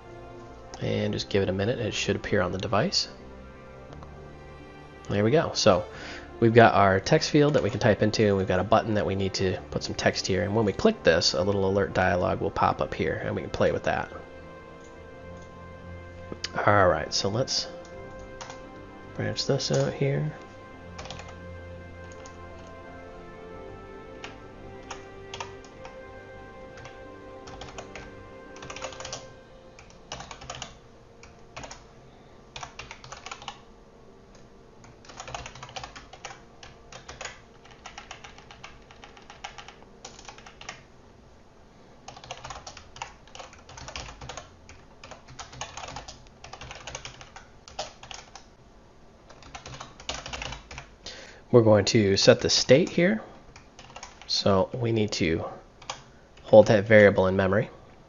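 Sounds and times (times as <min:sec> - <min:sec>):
typing on computer keyboard: 0:21.0 - 0:21.4, 0:24.2 - 0:25.9, 0:26.8 - 0:31.8, 0:32.6 - 0:33.6, 0:34.8 - 0:40.8, 0:42.1 - 0:48.5, 0:49.3 - 0:50.9, 0:53.5 - 0:54.3, 0:55.8 - 0:56.5.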